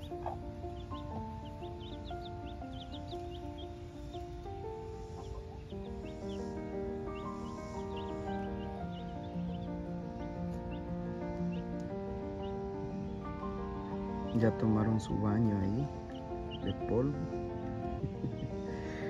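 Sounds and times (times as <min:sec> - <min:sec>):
baby chicks peeping: 0:00.0 - 0:19.0
music of slow held notes: 0:00.0 - 0:19.0.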